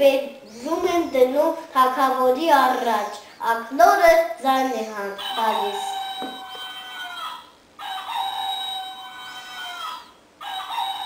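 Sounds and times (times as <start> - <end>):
toy rooster crowing: 5.2 - 11.0.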